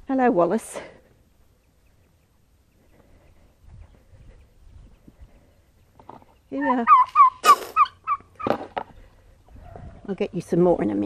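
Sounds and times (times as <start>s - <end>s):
turkey calling: 5.8s - 9.8s.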